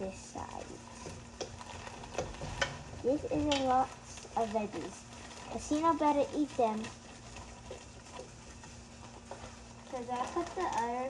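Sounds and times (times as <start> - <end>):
frozen peas pattering into bowl: 0.0 - 11.0
steady low hum: 0.0 - 11.0.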